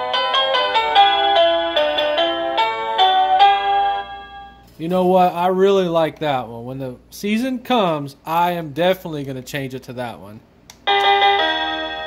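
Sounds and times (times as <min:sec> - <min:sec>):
electronic doorbell chime melody: 0:00.0 - 0:04.6, 0:10.9 - 0:12.0.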